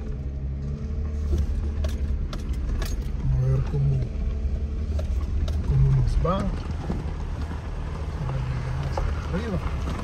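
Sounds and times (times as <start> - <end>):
vehicle engine and tyres rumbling: 0.0 - 10.0.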